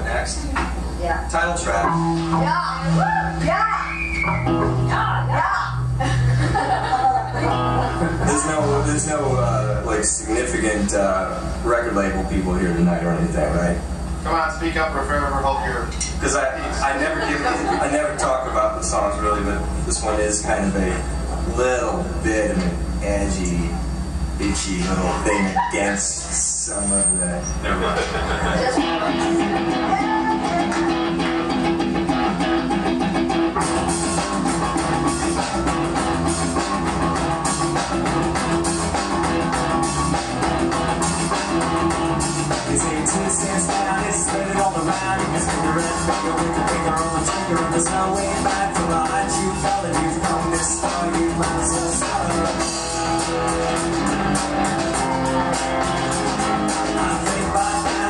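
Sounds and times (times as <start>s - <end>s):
bass guitar low notes: 1.3s - 58.0s
strummed acoustic guitar: 1.7s - 13.9s, 24.4s - 58.0s.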